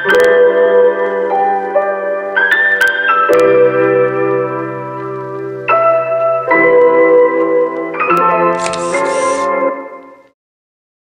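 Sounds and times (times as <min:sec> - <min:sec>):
music with sustained notes: 0:00.0 - 0:10.3
camera shutter click: 0:08.6 - 0:09.5
hissing noise: 0:08.6 - 0:09.6.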